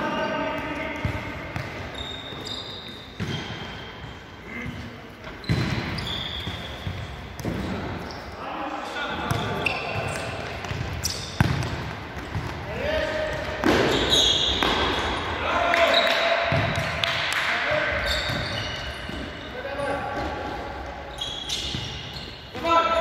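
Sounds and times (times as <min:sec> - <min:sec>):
shoes squeaking on floor: 0:01.8 - 0:04.6, 0:05.2 - 0:08.4, 0:09.2 - 0:11.6, 0:13.6 - 0:15.2, 0:17.9 - 0:23.0.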